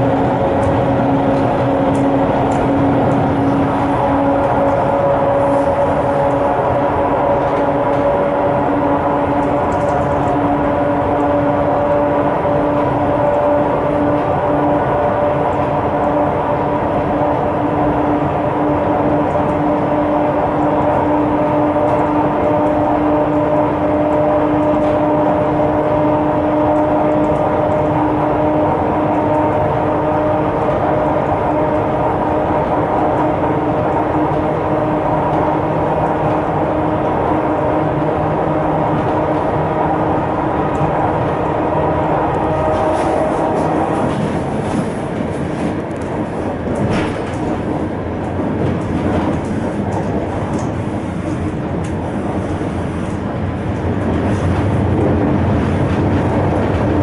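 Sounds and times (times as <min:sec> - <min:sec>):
train rumble and hum: 0:00.0 - 0:57.0.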